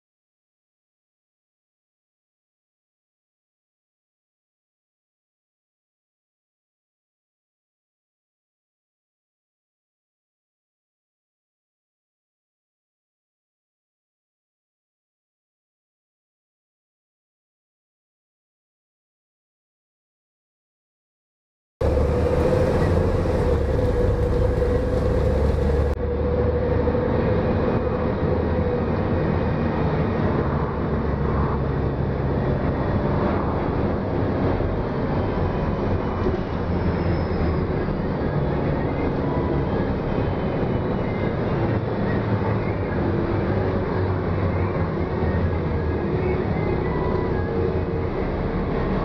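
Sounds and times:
held whine: 21.8s - 28.9s
bus engine and road rumble: 21.8s - 49.0s.

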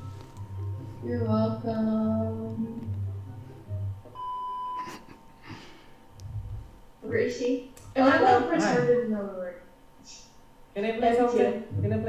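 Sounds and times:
electronic beep: 4.1s - 4.9s
person speaking: 7.3s - 9.2s.

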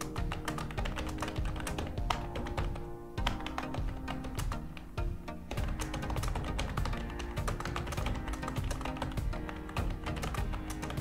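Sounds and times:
background music: 0.0s - 11.0s
computer keyboard typing: 0.0s - 11.0s.

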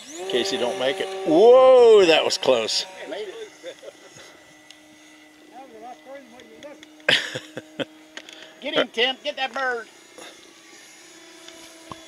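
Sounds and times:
model plane motor drone: 0.0s - 12.0s.

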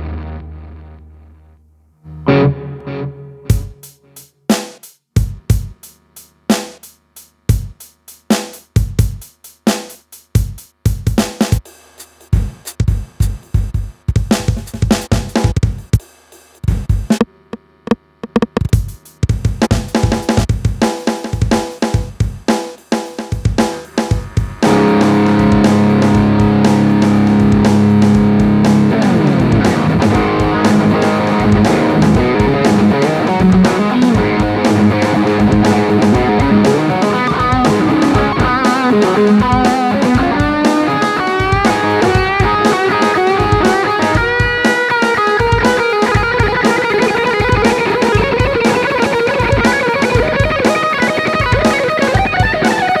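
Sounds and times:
distorted electric guitar chords: 0.0s - 6.7s, 16.7s - 22.5s, 23.2s - 53.0s
drum machine beats: 3.4s - 53.0s.

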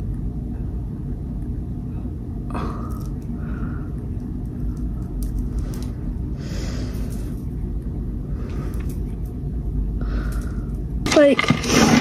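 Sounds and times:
low background rumble: 0.0s - 11.7s.

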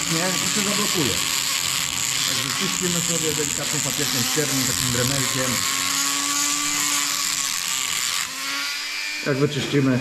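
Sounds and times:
rotary tool grinding metal: 0.0s - 10.0s.

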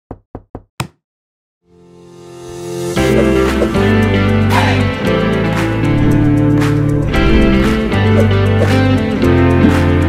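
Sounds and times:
music: 1.6s - 10.0s.

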